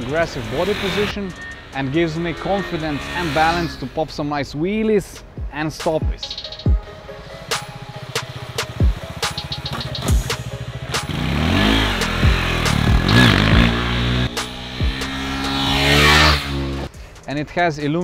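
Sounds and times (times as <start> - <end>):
music with steady beat: 0.0 - 3.8, 5.2 - 17.4
motorcycle engine revving: 0.0 - 4.1, 6.7 - 16.9.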